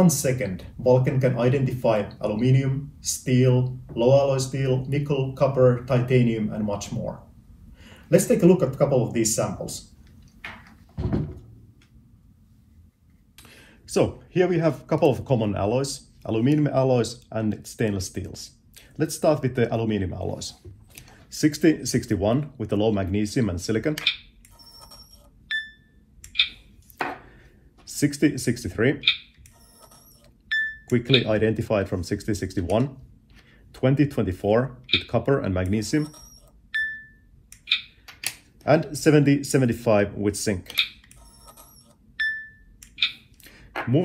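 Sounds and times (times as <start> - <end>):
electronic beep: 29.1 - 31.3, 36.0 - 37.9.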